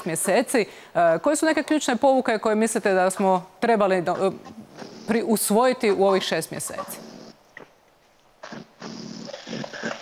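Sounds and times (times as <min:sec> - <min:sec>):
dull hiss of breath: 0:00.6 - 0:01.0.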